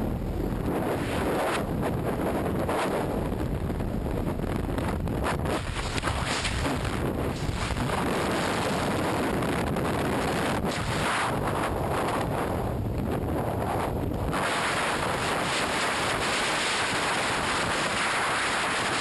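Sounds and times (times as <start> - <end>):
wind roaring: 0.0 - 19.0.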